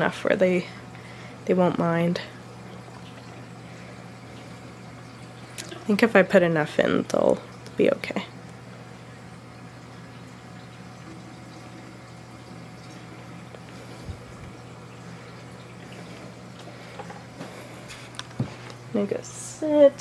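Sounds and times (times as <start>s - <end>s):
aquarium hum: 0.0s - 20.0s
faint trickling water: 0.0s - 20.0s.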